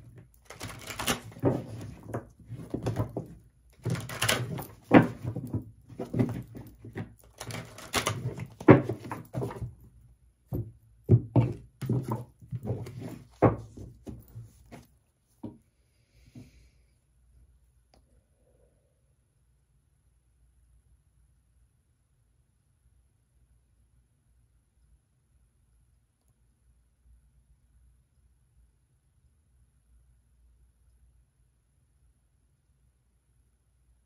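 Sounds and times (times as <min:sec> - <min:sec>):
cards being shuffled by hand: 0:00.0 - 0:09.8.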